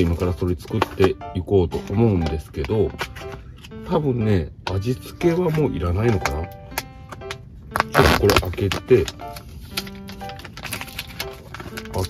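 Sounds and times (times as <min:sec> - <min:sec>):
soft sustained background music: 0:00.0 - 0:12.0
food packet tearing open: 0:07.7 - 0:12.0.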